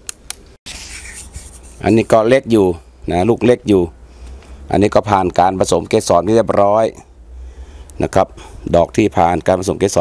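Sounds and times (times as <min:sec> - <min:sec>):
scratchy rustling hiss: 0:00.7 - 0:02.4
man talking: 0:01.8 - 0:04.0, 0:04.7 - 0:07.1, 0:08.0 - 0:10.0.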